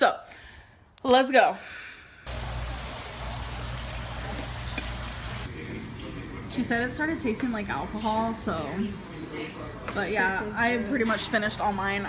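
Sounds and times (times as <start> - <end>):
even hiss: 2.3 - 5.5.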